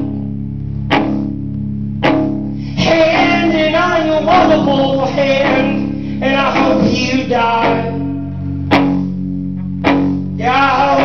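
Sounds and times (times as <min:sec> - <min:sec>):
guitar chords strummed: 0:00.0 - 0:11.0.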